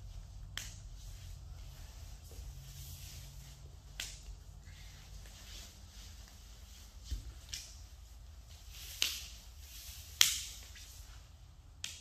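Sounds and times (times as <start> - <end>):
low steady hum: 0.0 - 12.0
people grappling on foam mat: 0.0 - 12.0
sharp slap: 10.1 - 10.7.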